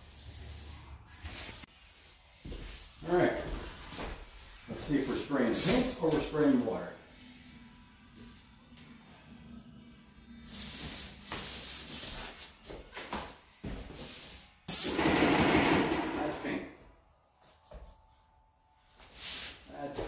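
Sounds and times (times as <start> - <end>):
paint sprayer hissing spray: 14.0 - 15.0.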